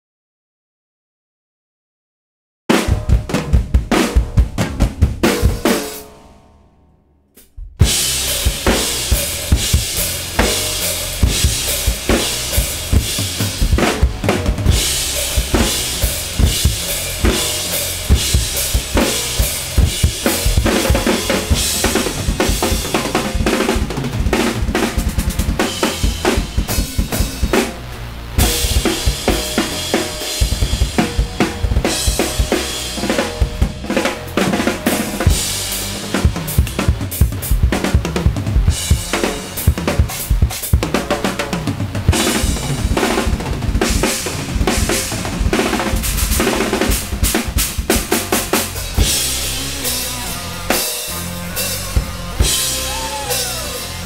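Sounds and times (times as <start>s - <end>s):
acoustic drum kit played fast: 2.7s - 54.0s.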